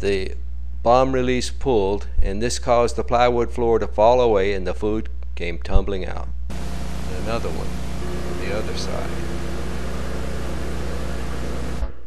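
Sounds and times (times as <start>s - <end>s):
bomber engines droning: 6.5s - 11.8s.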